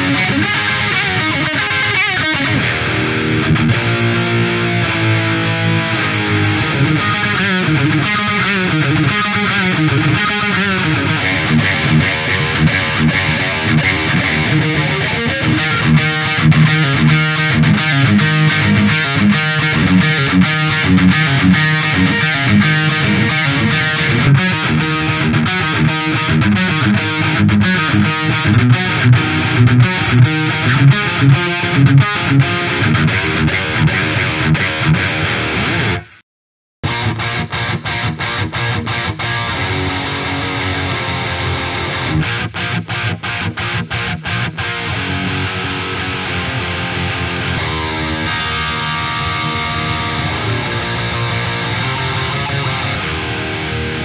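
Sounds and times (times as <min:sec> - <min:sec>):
distorted electric guitar metal riff: 0:00.0 - 0:36.2, 0:36.8 - 0:54.0.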